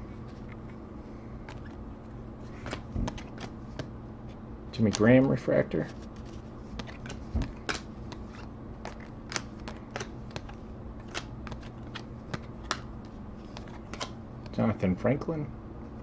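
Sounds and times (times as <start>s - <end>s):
low steady hum: 0.0s - 16.0s
cards flipping and slapping: 1.4s - 1.8s, 2.4s - 3.9s, 4.8s - 14.6s.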